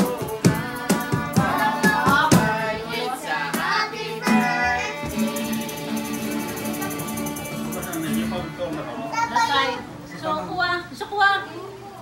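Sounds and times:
sharp percussive strokes: 0.0 - 8.6
voices singing: 0.0 - 10.1
acoustic guitar: 0.0 - 11.9.

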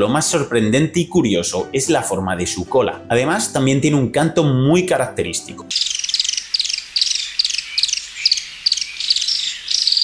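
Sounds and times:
bird singing high trills: 5.7 - 10.0.

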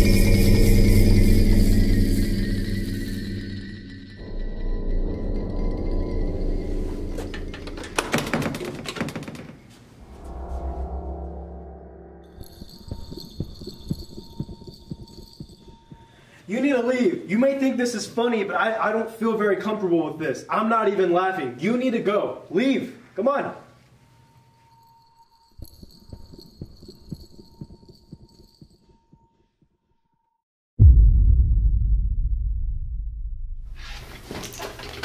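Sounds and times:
footsteps on hard floor: 12.4 - 16.2.

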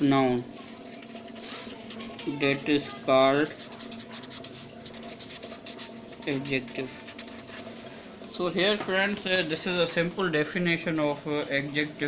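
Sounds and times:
pen scratching on paper: 0.6 - 7.8.

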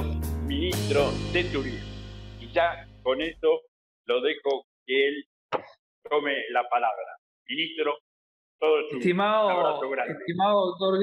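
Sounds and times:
speech over video call: 0.5 - 11.0.

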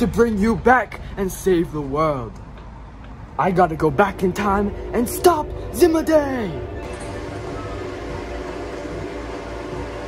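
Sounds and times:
steady rumbling noise: 0.0 - 10.0.

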